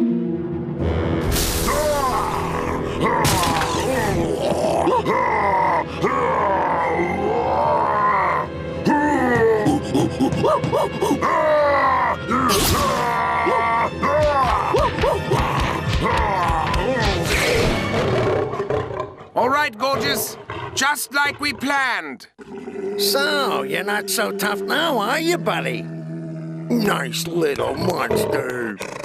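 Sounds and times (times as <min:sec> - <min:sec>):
background music: 0:00.0 - 0:22.0
cartoon monster growls: 0:00.8 - 0:29.0
cartoon character crying out: 0:01.7 - 0:08.5
man speaking: 0:19.4 - 0:22.3, 0:23.0 - 0:25.8, 0:26.7 - 0:28.8.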